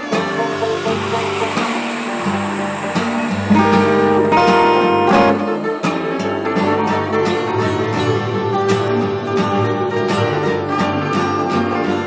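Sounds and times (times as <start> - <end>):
acoustic guitar: 0.0 - 12.0
banjo: 0.0 - 12.0.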